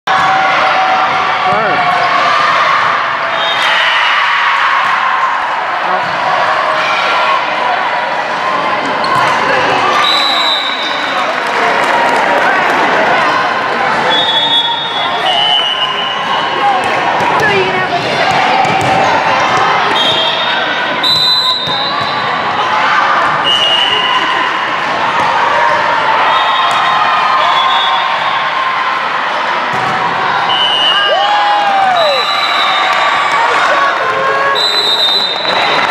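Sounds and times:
chatter of voices: 5.5s - 21.0s, 22.1s - 26.2s
referee whistle blasts: 10.0s - 10.9s, 14.1s - 16.6s, 19.9s - 22.2s, 23.4s - 24.3s, 26.3s - 28.3s, 30.5s - 31.3s, 34.6s - 35.6s
volleyball contacts: 15.4s - 20.5s.

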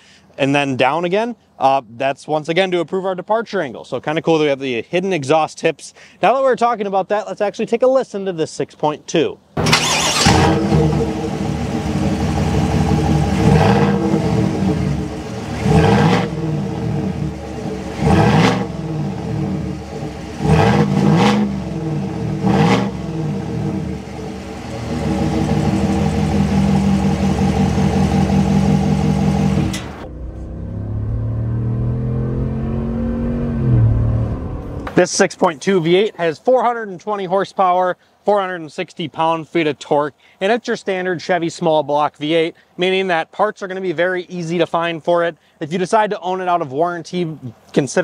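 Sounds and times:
truck engine revving: 9.6s - 34.9s.

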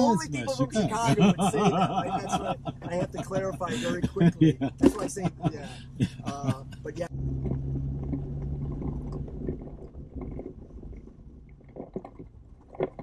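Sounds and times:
vehicle engine humming: 0.0s - 13.0s.

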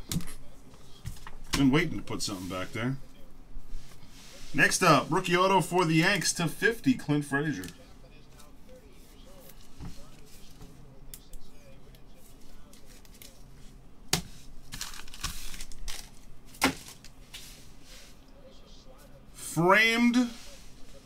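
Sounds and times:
card packaging rustling: 14.3s - 17.6s.

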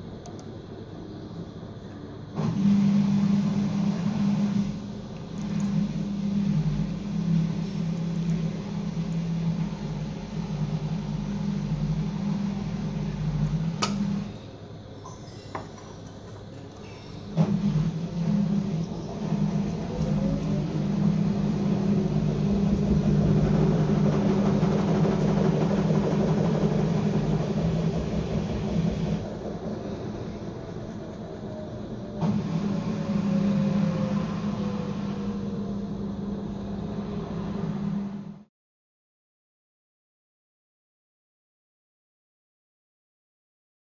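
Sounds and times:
loud mechanical rumble: 0.0s - 38.5s.

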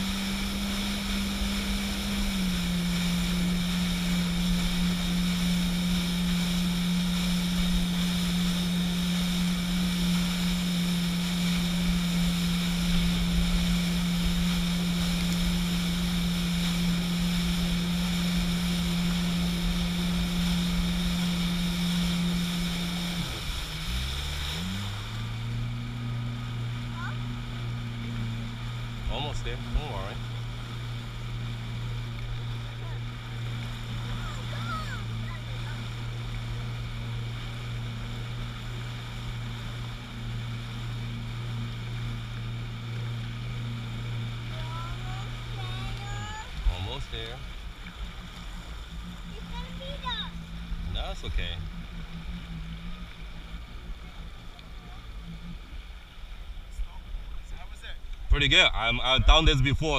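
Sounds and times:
jet ski engine running: 0.0s - 59.9s
rushing water: 0.0s - 59.9s.

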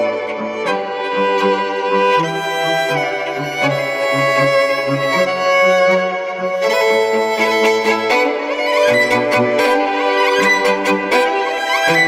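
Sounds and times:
violins playing bowed chords: 0.0s - 12.0s.

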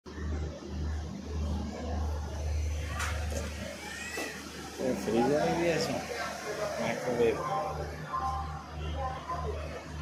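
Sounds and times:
railway coach hum and rumble: 0.1s - 10.0s.

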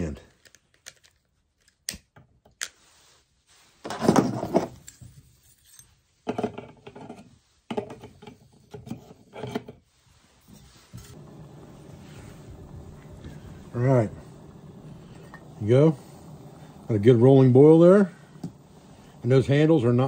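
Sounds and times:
steady rushing noise: 11.2s - 20.0s.

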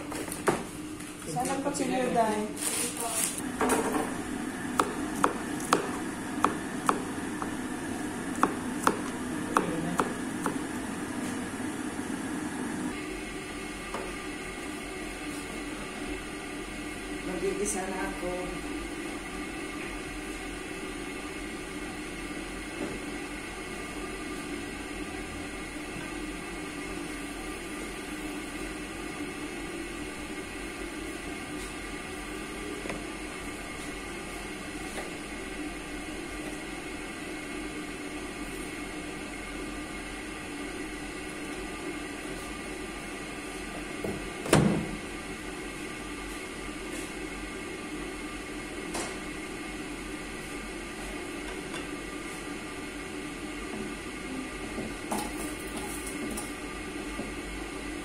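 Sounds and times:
kitchen appliance humming: 0.0s - 58.0s.

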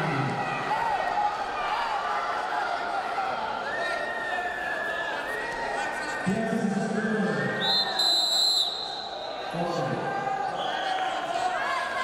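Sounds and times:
voices calling out in a hall: 0.0s - 12.0s.

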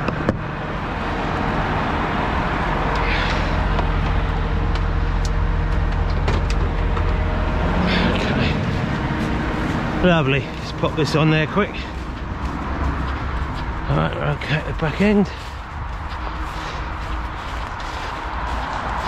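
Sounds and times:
diesel truck engine idling: 0.0s - 19.0s
road traffic passing: 0.0s - 19.0s.

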